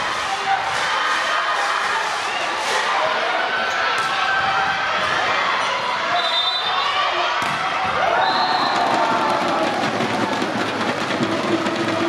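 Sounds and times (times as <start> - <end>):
spectators shouting and cheering: 0.0 - 12.0
rapid drum beating: 8.5 - 12.0.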